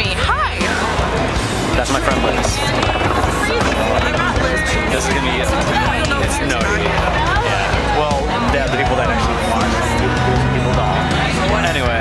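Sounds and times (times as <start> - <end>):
babble of voices: 0.0 - 12.0
music playing: 0.0 - 12.0.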